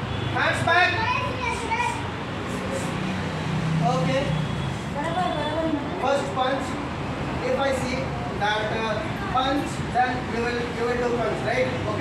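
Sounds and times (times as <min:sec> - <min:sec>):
children calling and chattering: 0:00.4 - 0:03.6, 0:04.9 - 0:10.0.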